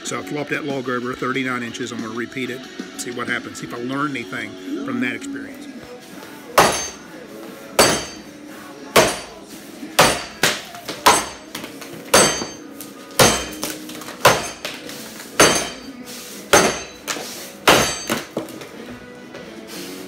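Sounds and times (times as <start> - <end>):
axe chopping a log: 6.6 - 7.0, 7.8 - 8.3, 9.0 - 9.4, 10.0 - 15.9, 16.5 - 18.5.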